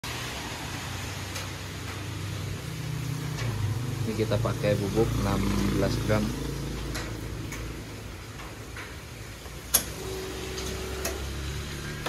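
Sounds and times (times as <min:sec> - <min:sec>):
low mechanical hum: 0:00.7 - 0:12.0.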